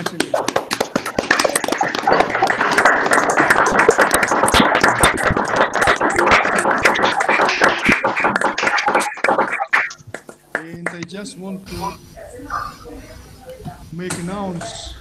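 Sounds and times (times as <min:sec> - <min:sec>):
people clapping: 0:00.0 - 0:11.2.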